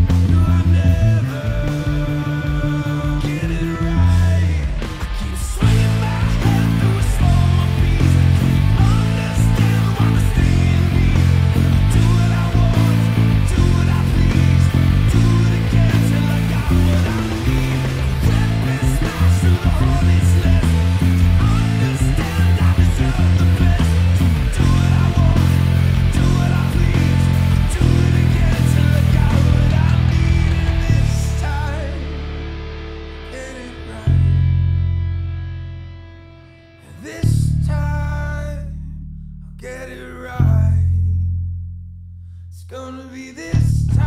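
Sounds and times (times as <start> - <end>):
rock band recording: 0.0 - 38.8, 42.2 - 44.0
electric bass: 0.0 - 44.0.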